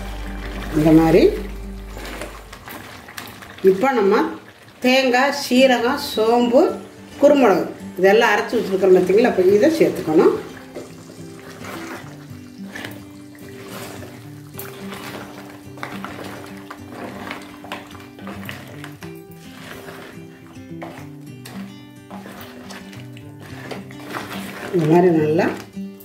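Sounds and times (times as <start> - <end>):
instrumental music: 0.0 - 3.3, 6.1 - 26.0
spatula scraping clay pot: 8.4 - 25.9.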